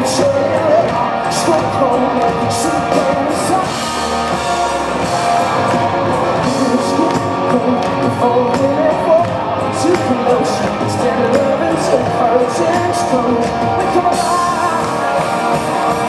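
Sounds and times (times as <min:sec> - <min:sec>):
bass guitar: 0:00.0 - 0:16.0
drums: 0:00.0 - 0:16.0
electric guitar: 0:00.0 - 0:16.0
man singing: 0:00.0 - 0:16.0.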